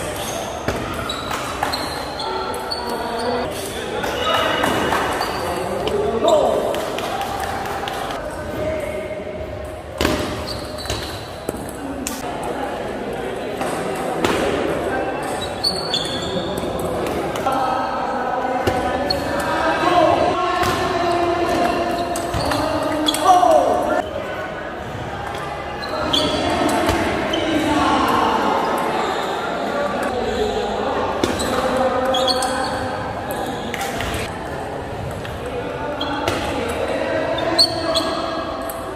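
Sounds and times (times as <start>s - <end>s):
voices in reverberant hall: 0.0s - 38.9s.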